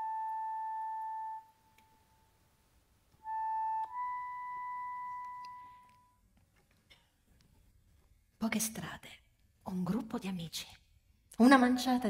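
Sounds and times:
flute holding a note: 3.2s - 6.1s.

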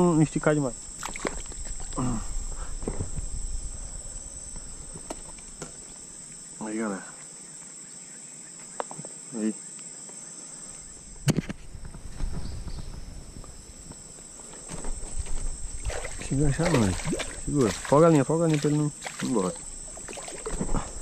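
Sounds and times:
insects buzzing: 0.0s - 21.0s
rustling and knocks: 13.9s - 15.6s.

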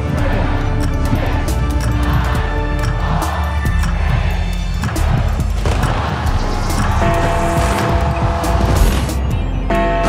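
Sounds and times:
crowd noise: 0.0s - 9.7s
music: 0.0s - 10.0s.

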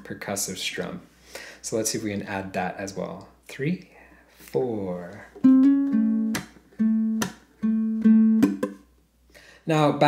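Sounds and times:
fingerpicked ukulele: 5.4s - 8.8s
percussive palm slaps on strings: 6.3s - 7.5s, 8.4s - 8.8s.

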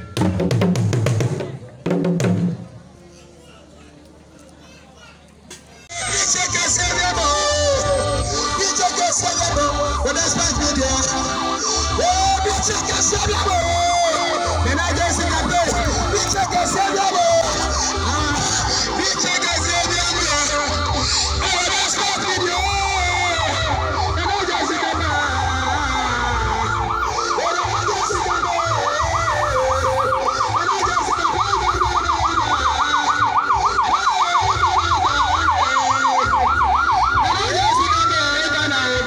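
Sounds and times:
electronic vehicle siren: 6.0s - 39.0s.

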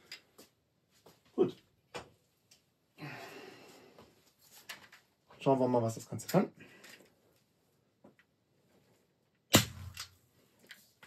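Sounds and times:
air rifle shot: 9.5s - 10.0s.

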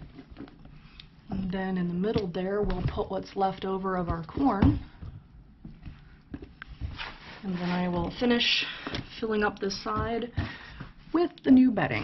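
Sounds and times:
soft handling knocks and taps: 4.0s - 7.1s, 8.0s - 11.0s.

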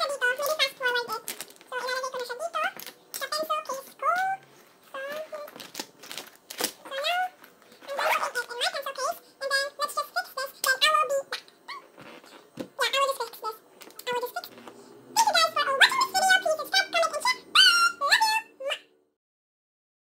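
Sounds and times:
girl talking: 0.0s - 5.7s, 6.8s - 11.9s, 12.7s - 18.9s.

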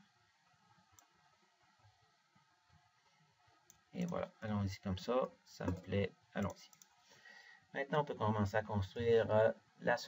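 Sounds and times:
computer mouse clicks: 0.9s - 1.1s, 5.7s - 7.0s.

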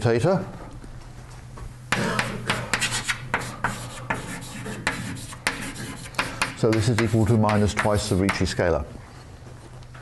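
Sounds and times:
steady low hum: 0.0s - 10.0s
scratchy handwriting strokes on board: 2.0s - 8.5s.

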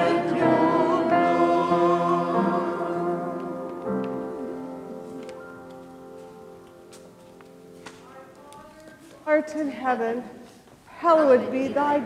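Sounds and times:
choir holding a chord: 0.0s - 5.0s.

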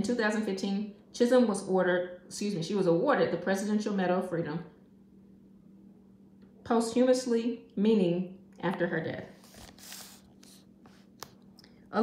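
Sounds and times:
paper pages rustling: 9.3s - 11.4s.

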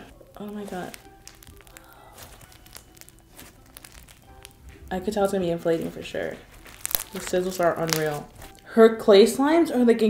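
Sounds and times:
slime squeezed popping and crackling: 0.0s - 8.7s.

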